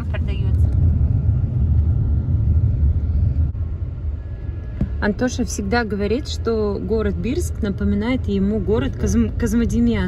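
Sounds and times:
car road noise rumble: 0.0 - 10.0.

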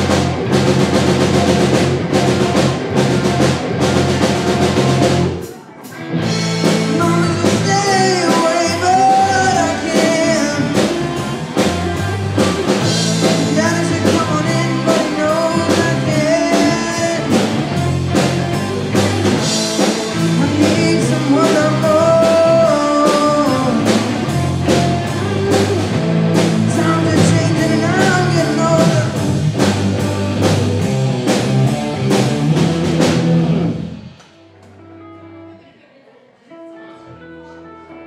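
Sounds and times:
live rock band playing: 0.0 - 35.6.

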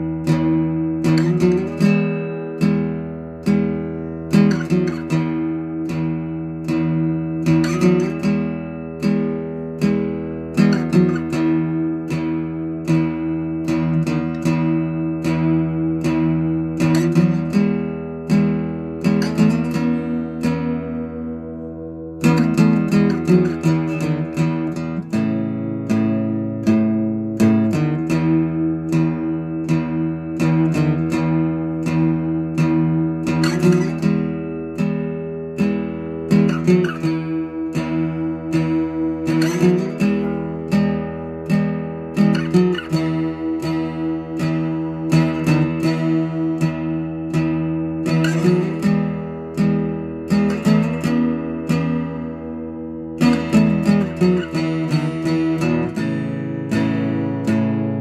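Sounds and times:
acoustic guitar picking: 0.0 - 58.0.

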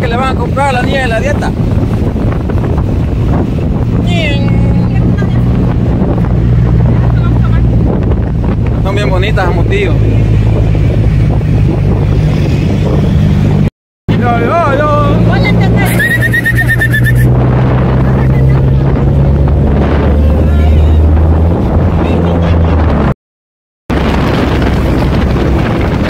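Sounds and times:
engine and tyres droning: 0.0 - 23.1
wind rush: 0.0 - 23.2, 23.9 - 26.0
high warbling tone: 9.6 - 17.4.

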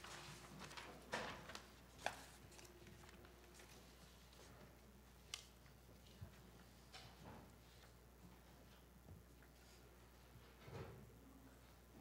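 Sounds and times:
paper rustle: 0.0 - 4.5.

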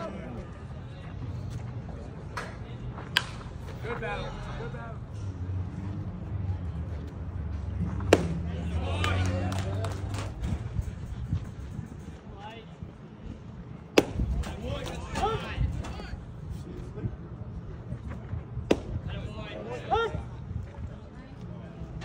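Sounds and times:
baseball smacking into mitt: 8.0 - 8.5, 13.9 - 14.6, 18.6 - 19.0
players calling out: 8.1 - 10.3.

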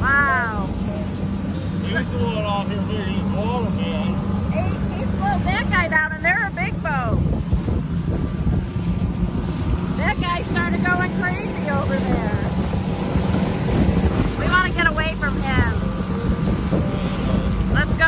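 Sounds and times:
boat motor humming: 0.0 - 18.0
choppy water: 0.0 - 18.0
wind on microphone: 0.0 - 18.0.

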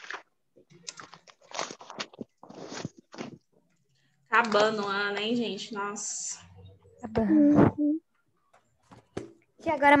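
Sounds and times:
book pages rustling: 0.0 - 3.8.

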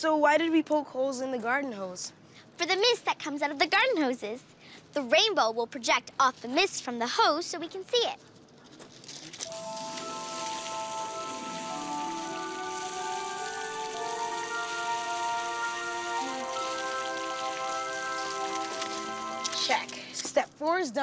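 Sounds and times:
hose spraying water mist: 9.4 - 20.2
background music with held notes: 9.5 - 20.2.

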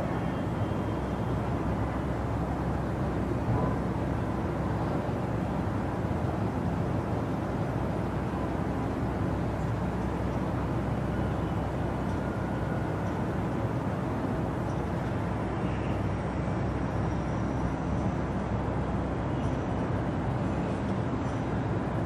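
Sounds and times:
low rumbling background noise: 0.0 - 22.0.

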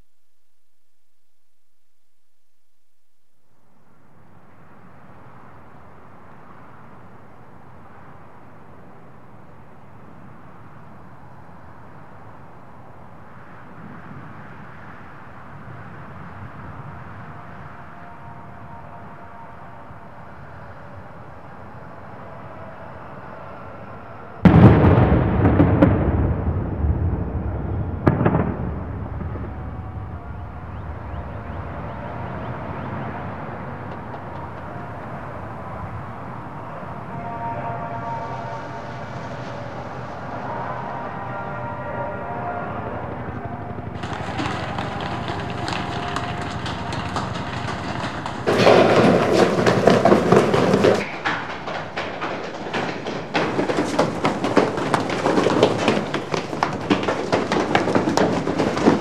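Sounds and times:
loud explosion: 24.4 - 31.8
loud crashing noise: 24.4 - 31.9, 44.0 - 59.0.

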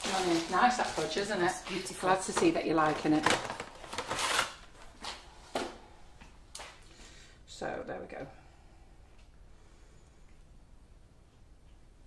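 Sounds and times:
packaging rustling: 0.0 - 5.2.

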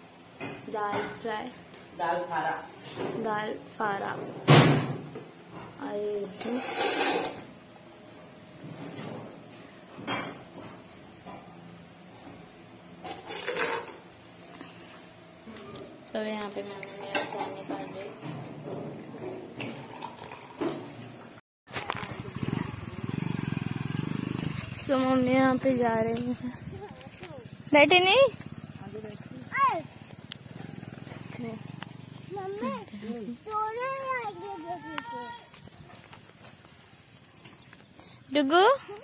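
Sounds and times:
faint kitchen background: 0.0 - 21.4
motorcycle engine idling: 21.8 - 33.6
child calling: 29.4 - 29.9, 32.3 - 35.6.

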